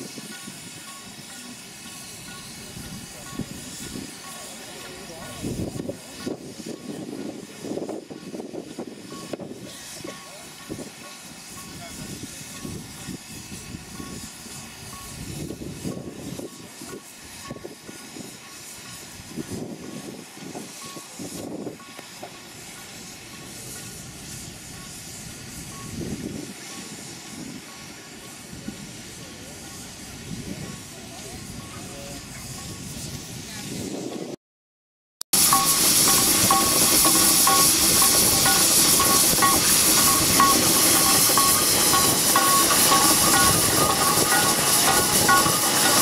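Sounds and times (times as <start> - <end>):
steam engine hissing: 0.0 - 34.4, 35.3 - 46.0.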